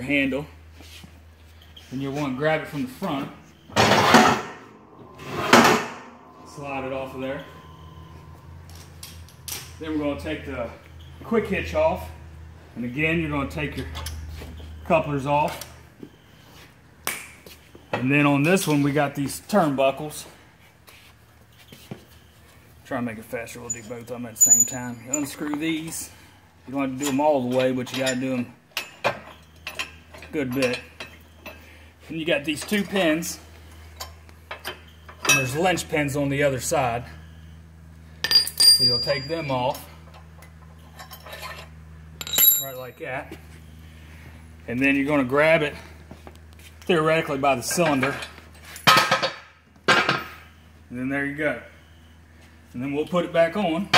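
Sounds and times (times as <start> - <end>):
steady low hum: 0.0 - 53.9.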